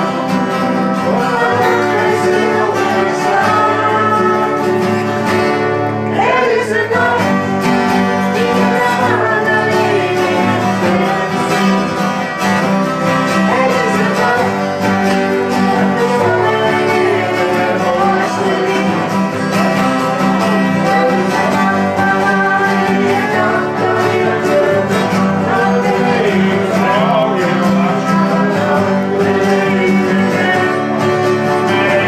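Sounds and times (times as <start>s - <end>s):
acoustic guitar strumming: 0.0s - 32.0s
people singing along: 0.0s - 32.0s.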